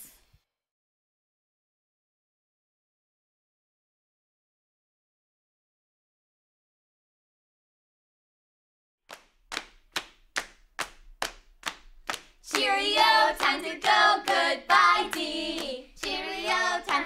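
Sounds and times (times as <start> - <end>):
hands clapping a beat: 9.1 - 17.0
people singing: 12.5 - 17.0.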